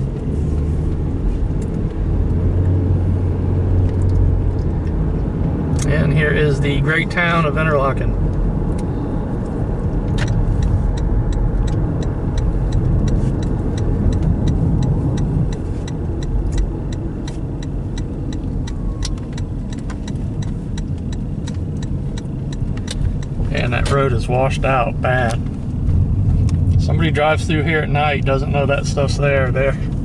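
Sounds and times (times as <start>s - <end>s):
car engine and road rumble: 0.0s - 30.0s
turn signal clicking: 0.1s - 5.9s, 8.2s - 24.1s, 25.2s - 27.0s.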